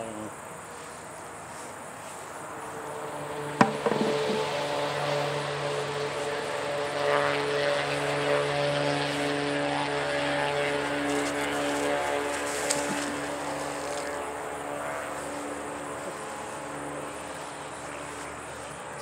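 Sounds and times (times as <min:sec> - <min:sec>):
propeller plane engine droning: 0:00.0 - 0:19.0.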